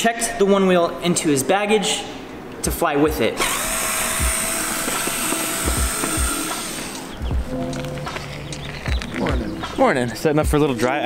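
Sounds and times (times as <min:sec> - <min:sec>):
power drill whining: 0:03.4 - 0:07.2
music beat: 0:03.7 - 0:10.9.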